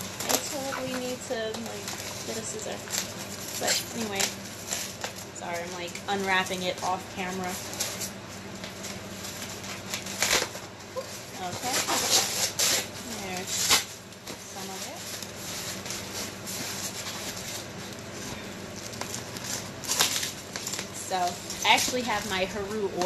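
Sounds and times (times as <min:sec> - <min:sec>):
packaging rustling and crinkling: 0:00.0 - 0:23.0.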